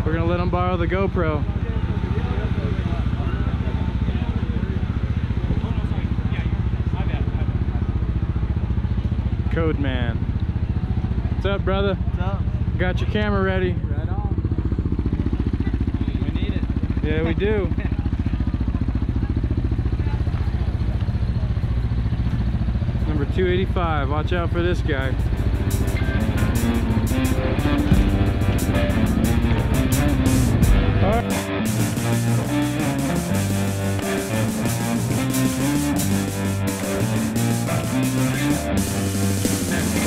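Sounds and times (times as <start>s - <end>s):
voices in background: 0.0s - 26.3s
engine idling: 0.0s - 40.0s.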